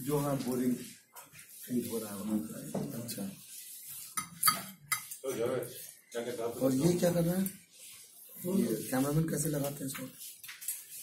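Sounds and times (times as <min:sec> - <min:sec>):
dishes and cutlery clinking: 0:04.0 - 0:05.2.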